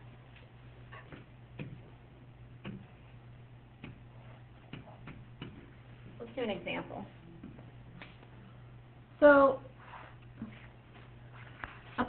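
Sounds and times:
steady low hum: 0:00.0 - 0:12.0
stylus tapping on screen: 0:01.0 - 0:01.9, 0:02.6 - 0:02.9, 0:03.8 - 0:04.0, 0:04.7 - 0:05.7.

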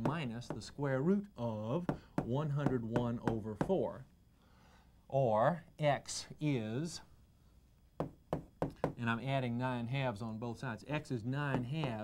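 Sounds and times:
chalk tapping on chalkboard: 0:00.0 - 0:00.7, 0:01.8 - 0:03.8.

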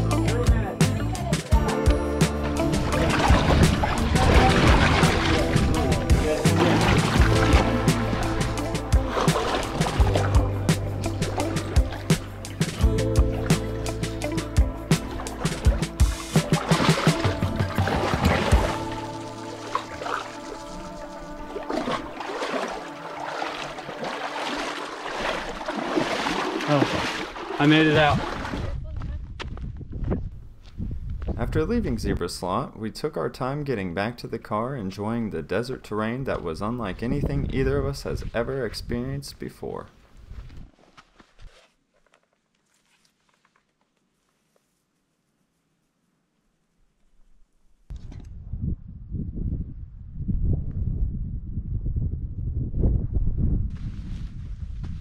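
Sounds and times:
wind buffeting microphone: 0:27.8 - 0:32.3, 0:36.4 - 0:39.1, 0:47.9 - 0:55.0
low microphone rumble: 0:48.2 - 0:55.0.

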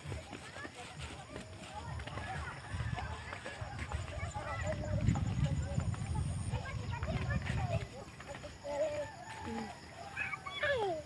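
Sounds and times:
wind rumble on microphone: 0:01.8 - 0:10.0.

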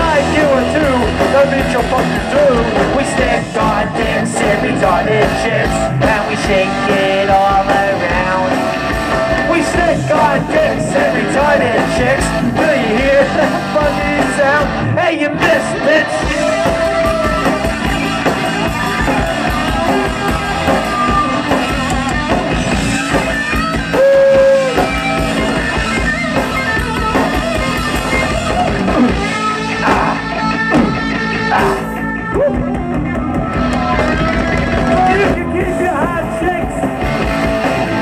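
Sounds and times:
punk rock band playing loudly: 0:00.0 - 0:38.0.

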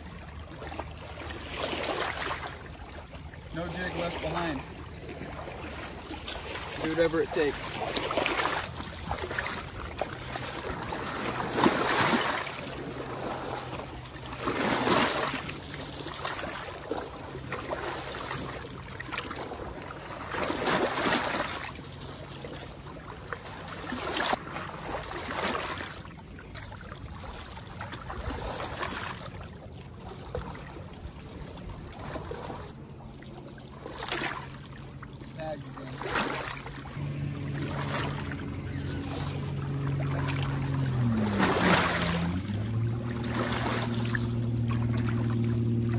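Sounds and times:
small waves lapping against rocks: 0:00.0 - 0:45.9.

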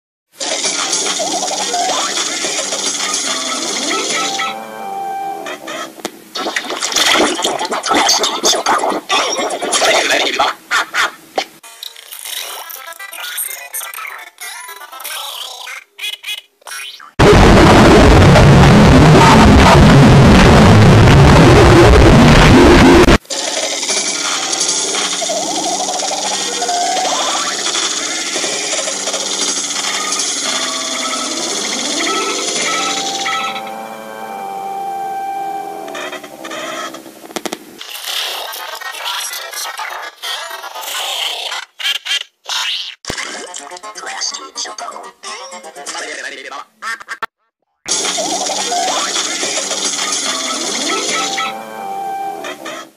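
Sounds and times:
cartoon sound effects: 0:00.4 - 0:10.0, 0:15.5 - 0:23.2, 0:23.8 - 0:37.0, 0:47.9 - 0:52.9
electronic logo music: 0:03.2 - 0:05.8, 0:30.0 - 0:37.0
synthesized jingle with blips: 0:03.2 - 0:05.9, 0:29.9 - 0:37.0.

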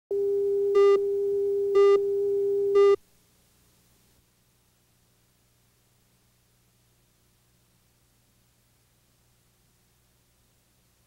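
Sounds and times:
short buzzy beeps: 0:00.7 - 0:03.0.

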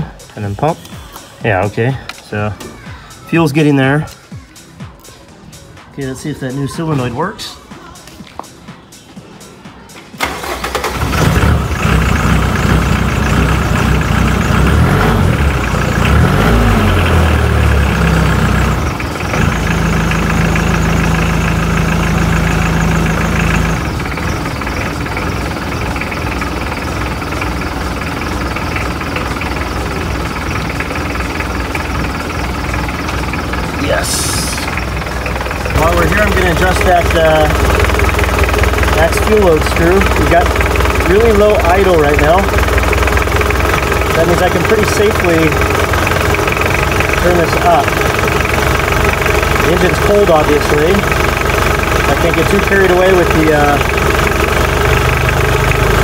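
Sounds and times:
diesel engine cranking and idling: 0:00.0 - 0:08.6, 0:09.4 - 0:56.0.

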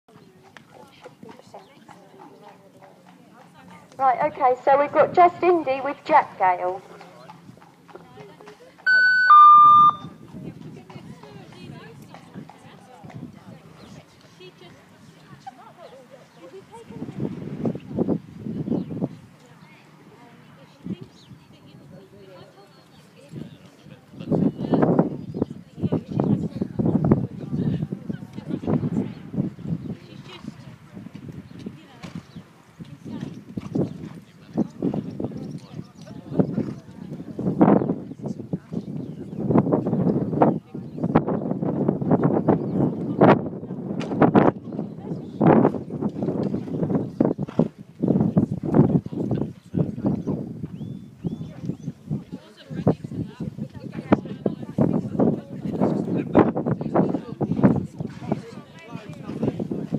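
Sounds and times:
horse hoofbeats: 0:00.1 - 0:14.8
electronic two-tone beep: 0:08.9 - 0:10.2.

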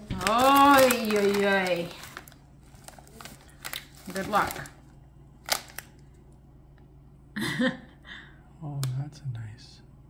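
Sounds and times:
snack bag crinkling: 0:00.0 - 0:06.3.

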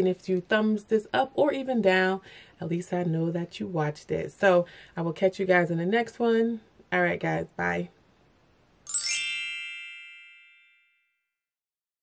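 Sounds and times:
bright chime: 0:08.9 - 0:11.2.

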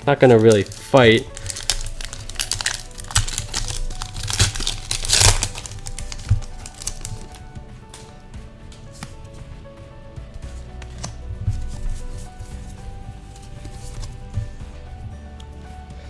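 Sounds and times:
soft background music: 0:00.0 - 0:16.0
trading cards clicking: 0:00.2 - 0:07.3
foil wrapper crinkling and tearing: 0:00.2 - 0:07.4.

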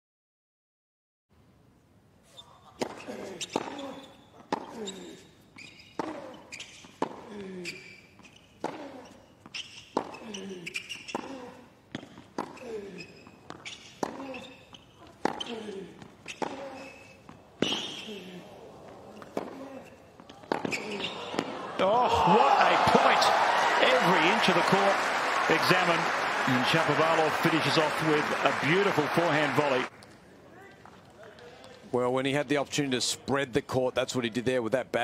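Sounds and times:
racquet hitting tennis ball: 0:06.0 - 0:07.3, 0:08.6 - 0:12.6, 0:13.5 - 0:14.4, 0:15.2 - 0:18.1, 0:19.2 - 0:19.7, 0:20.4 - 0:23.2
crowd applauding and cheering: 0:21.6 - 0:29.9.

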